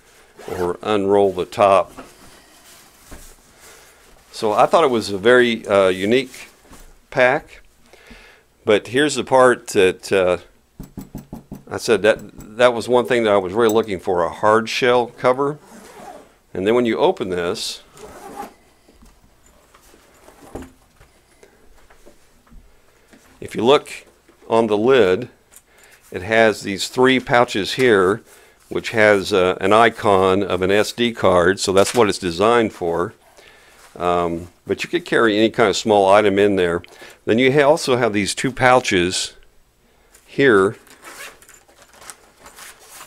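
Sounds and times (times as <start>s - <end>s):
zipper pulled open: 15.6s - 16.3s, 17.9s - 18.6s
fabric rustle: 40.9s - 43.0s.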